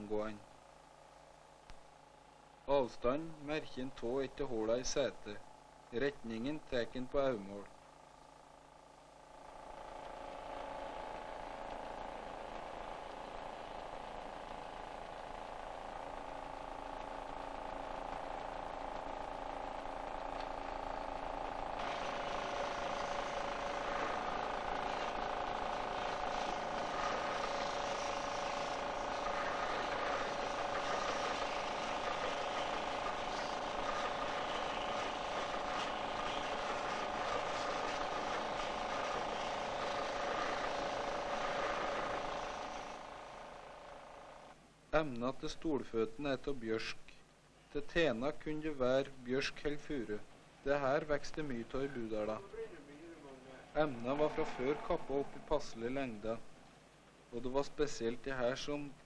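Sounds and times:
woodworking machinery humming: 7.7 - 44.6, 51.3 - 58.1.

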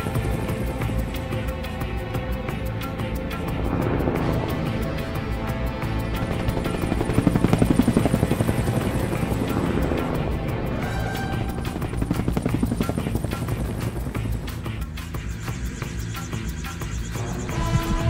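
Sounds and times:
background music: 0.0 - 18.0
helicopter rotor beating: 0.0 - 18.0.

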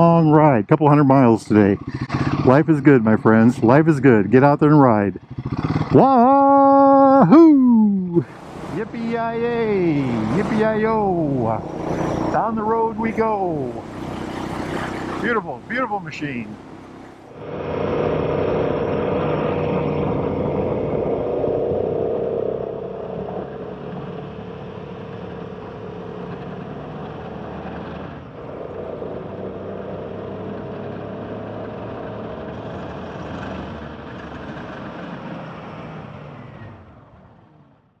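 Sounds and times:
road noise: 0.0 - 38.0
motorcycle engine running: 1.4 - 7.5, 8.2 - 35.6.

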